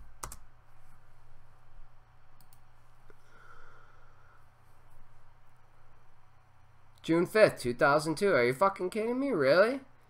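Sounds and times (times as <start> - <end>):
computer keyboard clicks: 0.2 - 0.4, 2.4 - 2.6.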